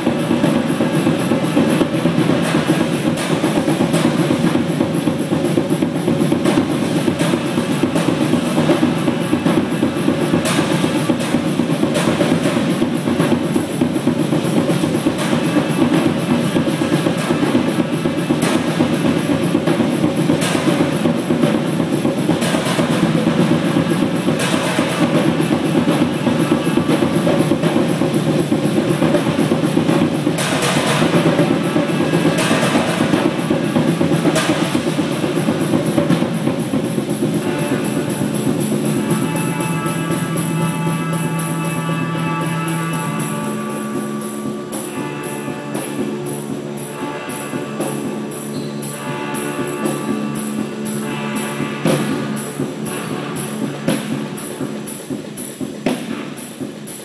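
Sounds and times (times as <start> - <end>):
drum kits playing: 0.0 - 57.0
loud cymbal crashes: 0.0 - 57.0.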